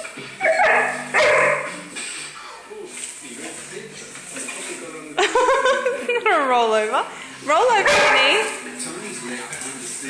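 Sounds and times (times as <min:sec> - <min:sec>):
dog barking and yipping: 0:00.4 - 0:01.7, 0:07.8 - 0:08.6.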